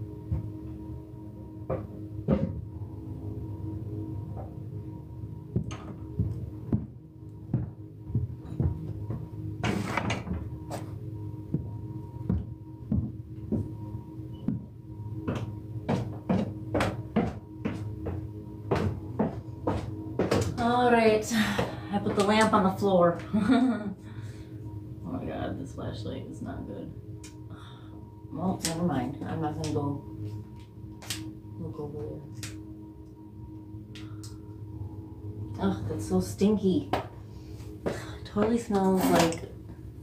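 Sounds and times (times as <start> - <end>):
soft ambient music: 0.0 - 40.0.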